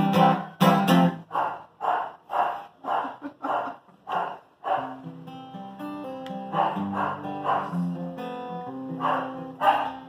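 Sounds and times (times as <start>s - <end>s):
acoustic guitar strumming: 0.0s - 1.3s, 4.8s - 10.0s
man laughing: 2.7s - 4.1s.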